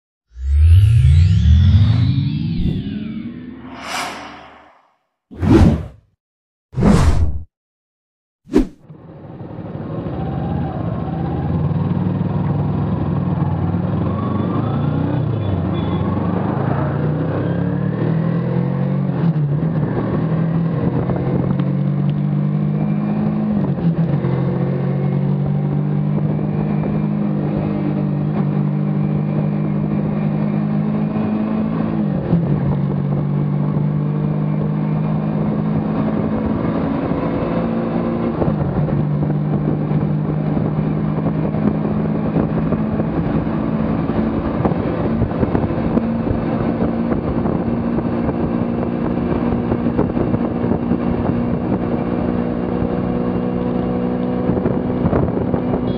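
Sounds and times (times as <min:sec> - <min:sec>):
motorcycle engine accelerating: 0:00.3 - 0:04.9
road and wind noise: 0:08.5 - 0:55.9.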